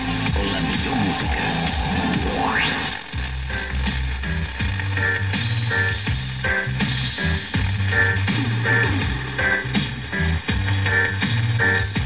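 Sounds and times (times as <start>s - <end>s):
music through radio receiver: 0.0s - 12.0s
radio static hiss: 0.0s - 12.0s.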